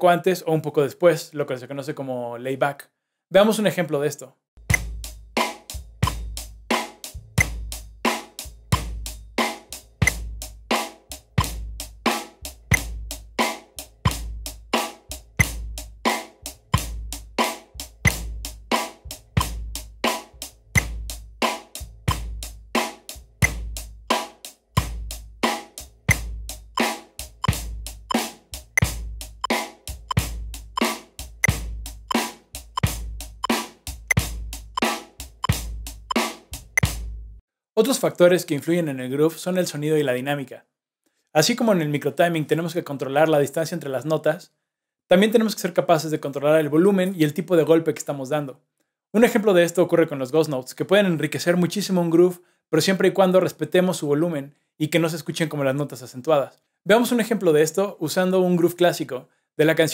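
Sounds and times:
drum kit groove: 0:04.6 - 0:37.2.

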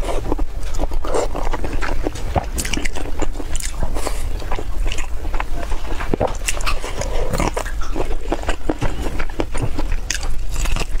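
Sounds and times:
chewing and biting food: 0:00.0 - 0:11.0.

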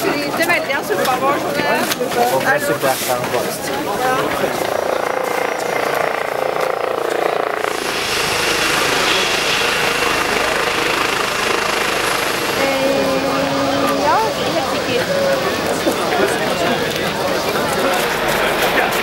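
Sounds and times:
voices and crowd: 0:00.0 - 0:19.0
helicopter engine running: 0:03.6 - 0:19.0
thin high whine: 0:04.1 - 0:19.0.

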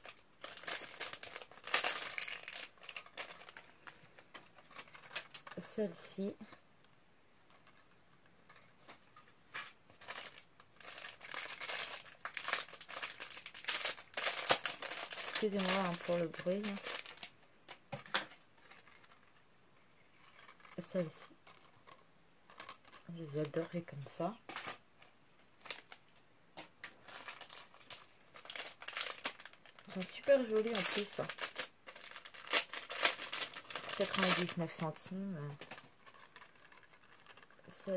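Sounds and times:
plastic crinkling and rustling: 0:00.0 - 0:06.6, 0:07.4 - 0:37.9.

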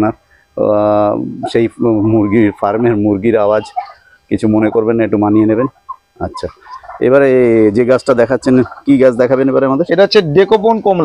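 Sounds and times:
poultry calling with warbling pitch: 0:00.9 - 0:09.8.

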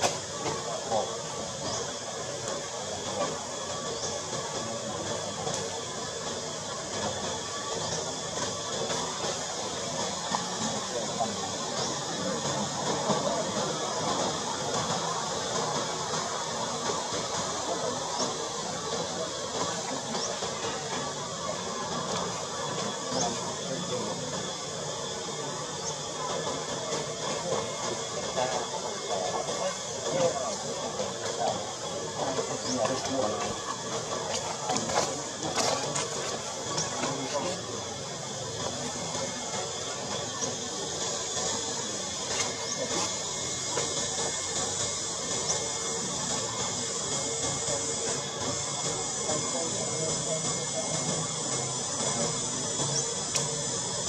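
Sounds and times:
indistinct voices: 0:00.0 - 0:54.0
steady hiss: 0:00.0 - 0:54.0.

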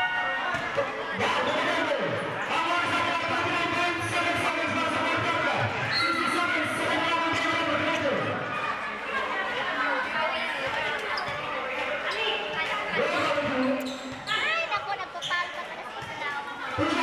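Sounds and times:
people calling and chattering: 0:00.0 - 0:17.0.

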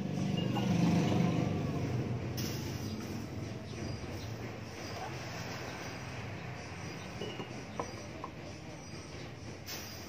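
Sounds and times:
passing vehicle rumble: 0:00.0 - 0:09.6.

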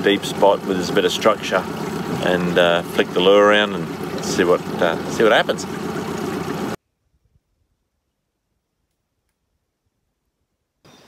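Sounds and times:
faint outdoor background sound: 0:00.0 - 0:11.0.

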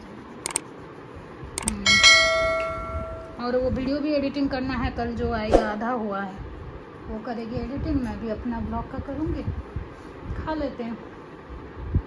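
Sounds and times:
computer mouse clicks: 0:00.4 - 0:00.6, 0:01.6 - 0:01.8
notification bell chime: 0:01.9 - 0:03.4.

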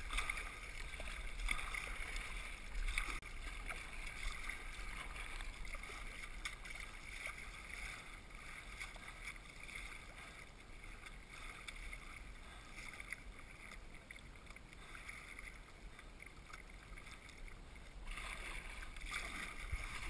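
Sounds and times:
water splashing against kayak hull: 0:00.0 - 0:20.0.

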